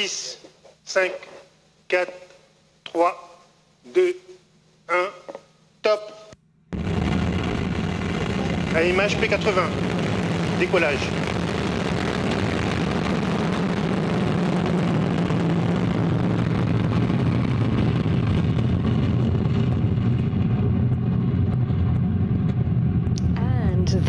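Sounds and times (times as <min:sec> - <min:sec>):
rocket exhaust hiss: 0:06.8 - 0:20.7
rocket engine rumble: 0:06.8 - 0:24.0.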